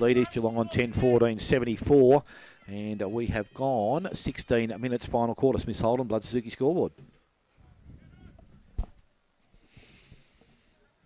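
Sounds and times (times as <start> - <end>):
outdoor ambience: 6.8 - 11.0.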